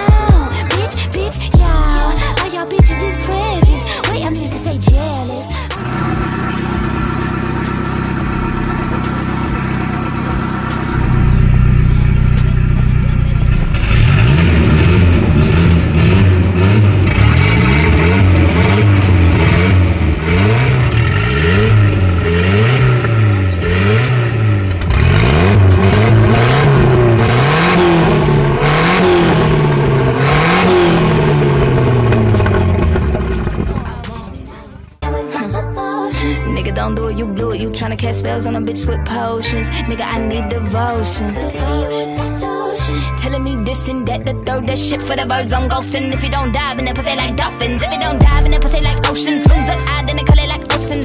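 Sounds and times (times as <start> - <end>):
car engine idling and revving: 0.0 - 35.0, 42.8 - 51.0.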